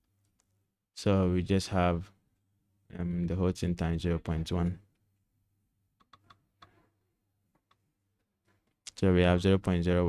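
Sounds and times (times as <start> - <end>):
faint irregular clicks: 6.0 - 6.8.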